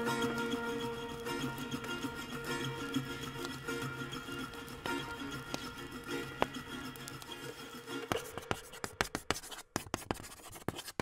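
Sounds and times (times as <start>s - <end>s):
wood fire crackling and popping: 0.0s - 9.3s
faint music: 0.0s - 9.6s.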